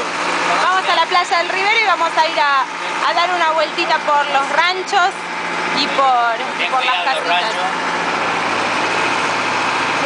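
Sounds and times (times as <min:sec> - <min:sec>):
bus engine running: 0:00.0 - 0:10.0
road noise: 0:00.0 - 0:10.0.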